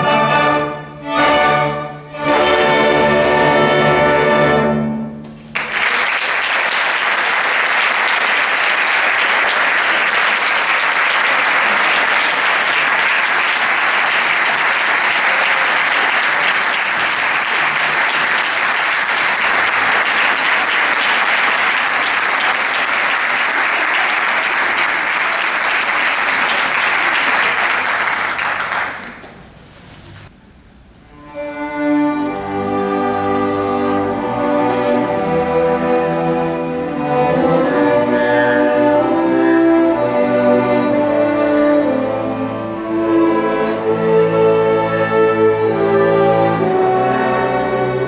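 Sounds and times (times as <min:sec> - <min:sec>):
orchestra playing: 0:00.0 - 0:29.5, 0:31.0 - 0:48.0
audience applauding: 0:05.4 - 0:29.4.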